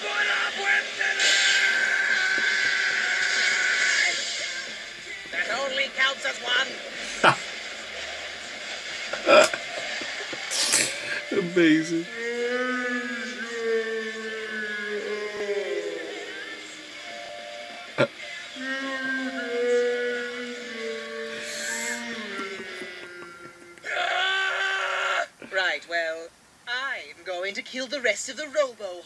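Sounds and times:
loud quick voices: 7.0s - 7.4s, 10.5s - 16.9s, 17.9s - 25.2s
voice holding long notes: 7.0s - 7.4s, 9.2s - 9.6s, 10.7s - 24.2s.

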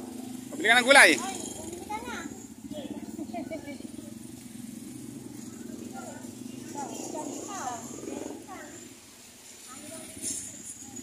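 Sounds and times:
people talking quietly: 0.5s - 11.0s.

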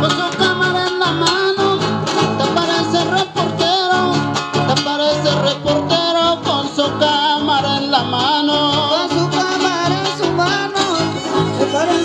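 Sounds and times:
guitars strumming: 0.0s - 12.0s
violin melody: 10.8s - 12.0s.

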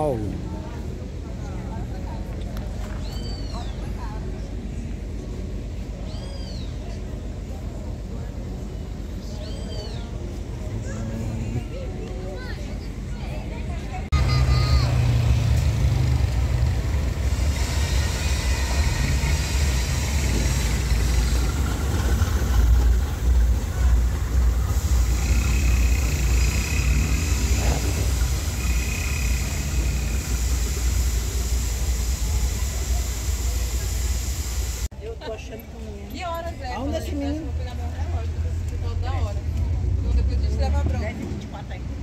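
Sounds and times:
freight train rumbling past: 0.0s - 34.9s.

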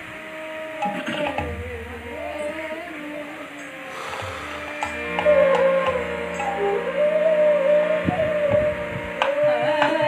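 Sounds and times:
harmonium drone: 0.0s - 10.0s
bamboo flute long note: 2.1s - 10.0s
low drum strokes: 3.9s - 6.1s.

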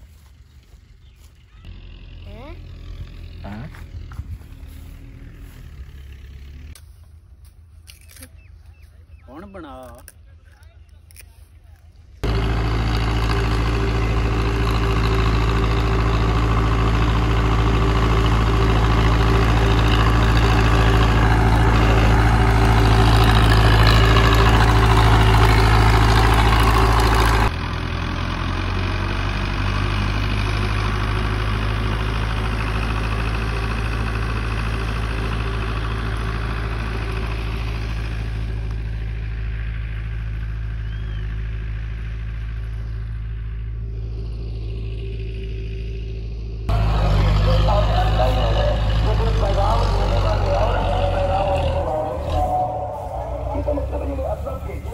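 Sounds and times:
tractor diesel engine running: 0.0s - 54.9s.

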